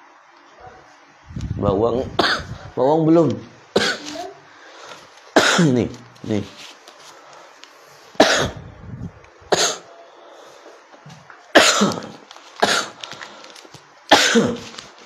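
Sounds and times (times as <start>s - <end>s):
man coughing: 2.2s - 2.7s, 5.4s - 5.8s, 8.2s - 8.7s, 9.5s - 9.9s, 11.6s - 13.0s, 14.1s - 14.6s.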